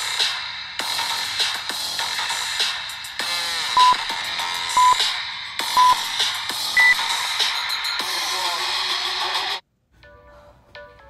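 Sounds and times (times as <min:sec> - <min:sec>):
electronic background music: 0:00.0 - 0:11.0
timer beeps: 0:03.8 - 0:04.0, 0:04.8 - 0:05.0, 0:05.8 - 0:06.0, 0:06.8 - 0:07.0.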